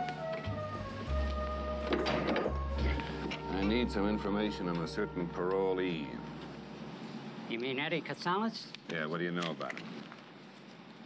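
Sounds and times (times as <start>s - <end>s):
background music: 0.0s - 7.0s.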